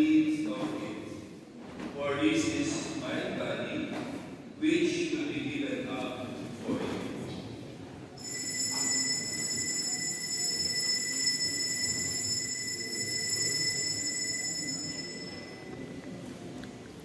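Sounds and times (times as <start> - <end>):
bell ringing: 8.2 - 15.9.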